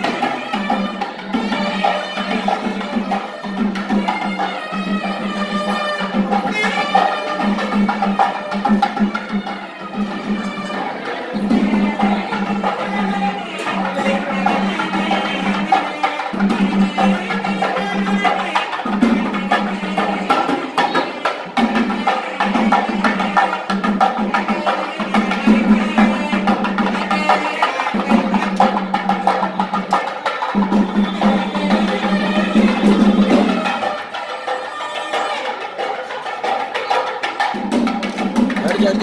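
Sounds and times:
rapid drumming: 0.0s - 39.0s.

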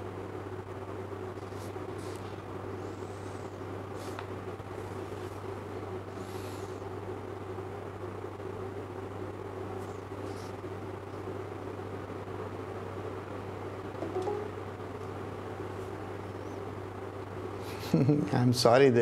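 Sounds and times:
low background hum: 0.0s - 19.0s.

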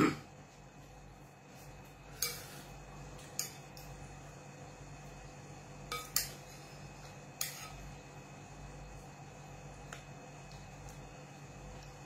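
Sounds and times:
faint steady hum: 0.0s - 12.0s
metal spoon clinking against dish: 5.9s - 6.4s.

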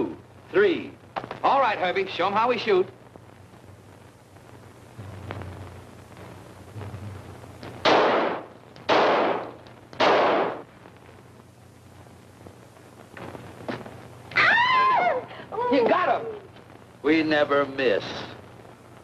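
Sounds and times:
revolver shots: 7.8s - 10.6s.

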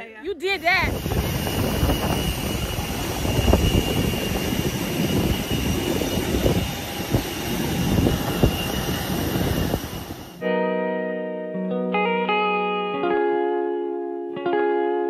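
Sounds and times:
guitar music: 0.0s - 3.6s, 10.4s - 15.0s
aircraft roar: 0.3s - 10.4s
high even whine: 0.4s - 10.5s.

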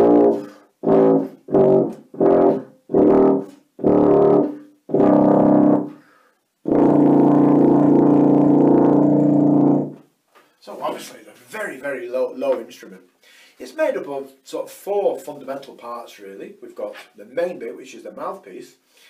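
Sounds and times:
tuba playing low notes: 0.0s - 6.0s, 6.6s - 10.0s.

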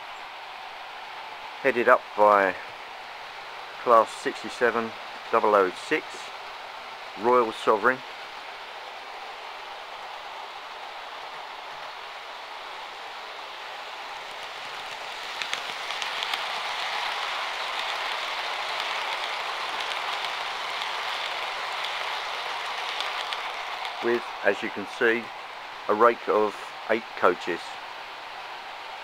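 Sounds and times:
model train wheels rattling on rails: 3.8s - 6.4s, 12.8s - 27.8s.

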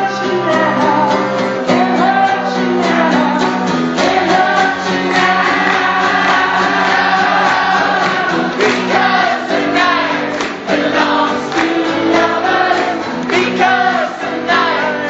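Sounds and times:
lead singer singing live: 0.0s - 15.0s
audience singing along: 3.9s - 15.0s.

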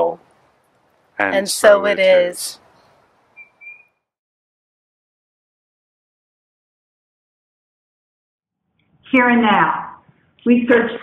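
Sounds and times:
high whistle-like notes: 3.4s - 4.0s.

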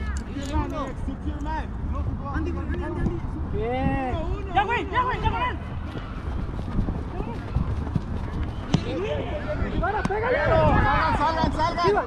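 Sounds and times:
wind rumble on microphone: 1.8s - 12.0s
football being kicked: 8.7s - 9.0s.

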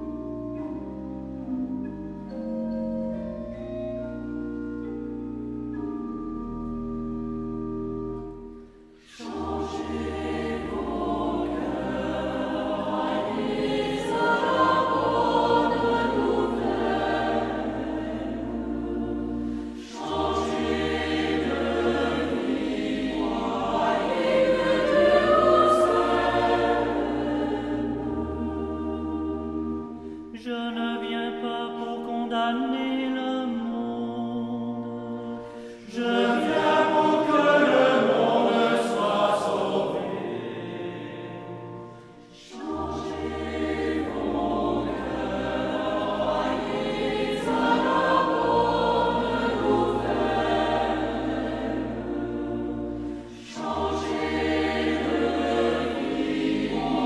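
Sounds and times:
church organ chords: 0.0s - 57.0s
choir singing a hymn: 9.0s - 57.0s.

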